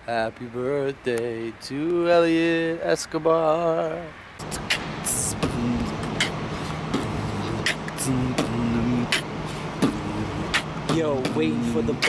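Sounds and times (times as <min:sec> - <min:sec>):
road traffic noise: 0:00.0 - 0:12.0
beatboxing mouth percussion: 0:04.4 - 0:12.0
hummed bass line: 0:04.4 - 0:12.0.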